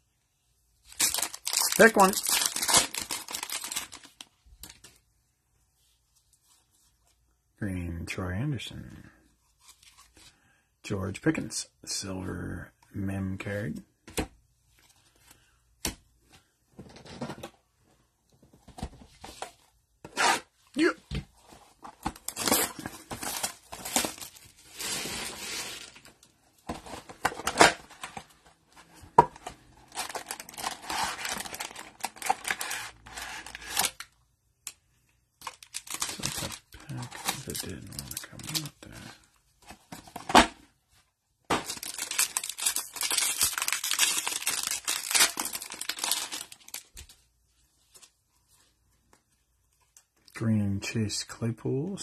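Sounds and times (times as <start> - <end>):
plastic and cardboard tearing: 1.0 - 4.0, 29.9 - 34.0, 41.6 - 46.9.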